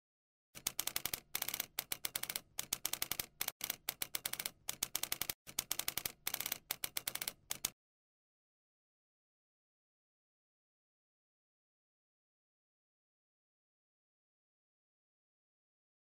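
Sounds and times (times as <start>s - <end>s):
typewriter key clicks: 0.6s - 7.8s.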